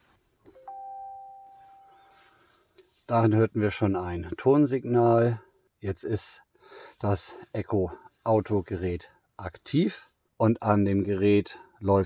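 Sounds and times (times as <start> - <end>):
rising two-note startup chime: 0.6 - 2.0.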